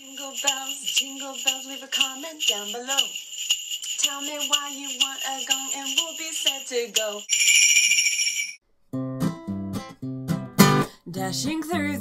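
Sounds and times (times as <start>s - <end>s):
sleigh bells jingling: 0.0s - 8.6s
strummed acoustic guitar music: 9.0s - 12.0s.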